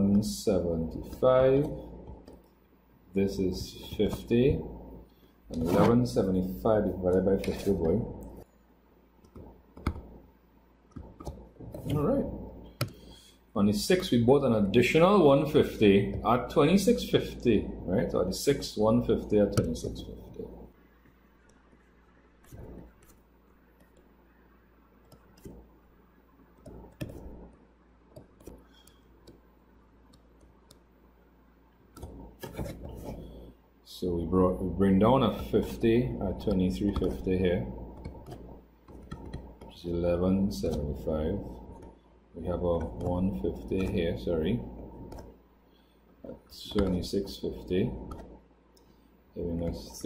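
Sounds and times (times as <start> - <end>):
stylus scratching on tablet: 5.5 - 8.5, 21.0 - 24.1, 25.0 - 25.7, 26.5 - 30.8, 31.9 - 33.5, 34.4 - 45.4, 46.6 - 48.5.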